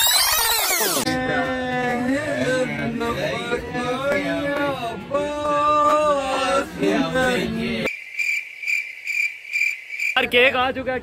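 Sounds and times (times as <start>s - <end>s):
cricket chirping: 7.9s - 10.2s.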